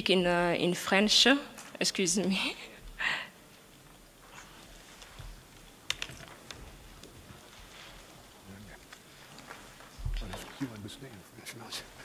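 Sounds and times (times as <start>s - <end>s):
sharp keyboard-like clicks: 5.6s - 7.1s.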